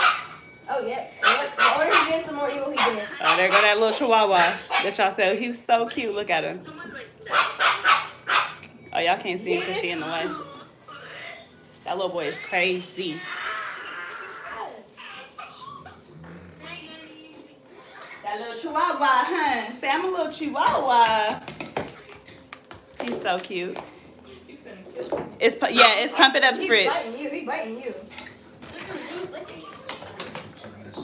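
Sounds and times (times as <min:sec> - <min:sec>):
faint voices: 0:08.9 - 0:18.7.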